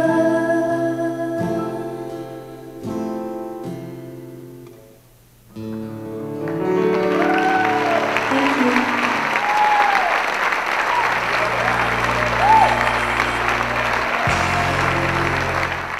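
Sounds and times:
held musical notes: 5.5s - 15.9s
audience applauding and cheering: 6.4s - 15.9s
shouts or whistles: 7.2s - 8.3s, 9.1s - 15.9s.

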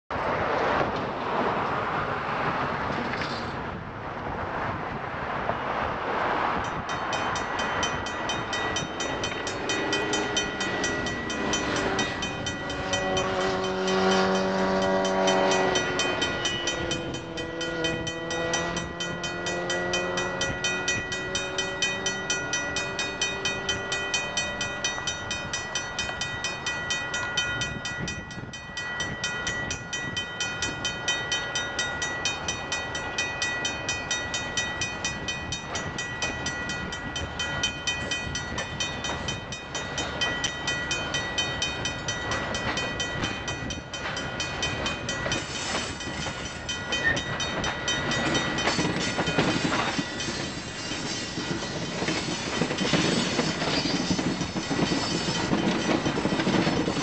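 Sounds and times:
freight train wheels on rails: 0.1s - 57.0s
level crossing bell ringing: 6.7s - 57.0s
engine drone: 8.9s - 24.8s.

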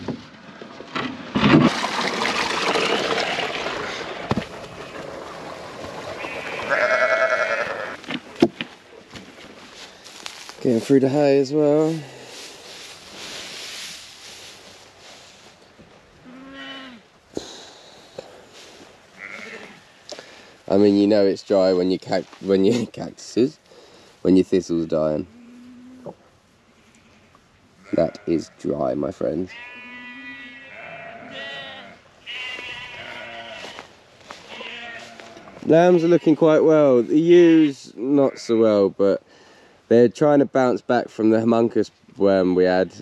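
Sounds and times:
sheep bleating: 6.2s - 8.0s, 16.2s - 17.0s, 19.2s - 19.9s, 26.7s - 28.4s, 29.5s - 33.9s, 34.5s - 36.4s.

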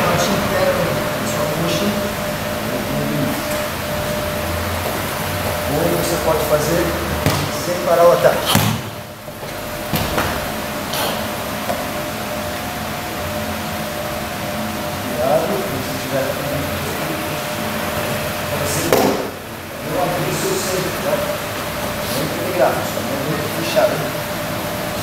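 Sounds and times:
steady hum: 0.0s - 25.0s
bodies thudding on a mat: 7.2s - 7.7s, 8.4s - 10.5s.

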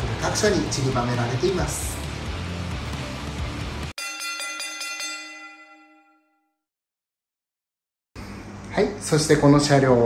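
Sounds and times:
background music: 0.0s - 3.9s
bell-like chime strikes: 4.0s - 6.6s.

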